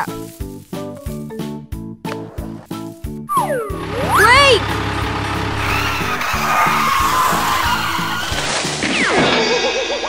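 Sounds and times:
children's background music: 0.0 - 8.8
cartoon tyre skid squeal: 5.5 - 10.0
falling whistle: 5.6 - 9.6.

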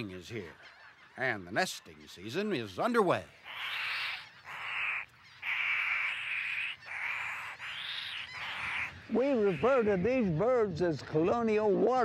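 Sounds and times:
pelican chicks hissing calls: 3.4 - 8.9.

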